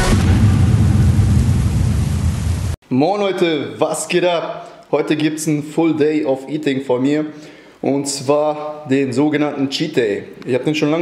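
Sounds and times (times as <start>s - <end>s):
deep thunder rumble: 0.0s - 2.8s
rushing rain: 1.2s - 2.8s.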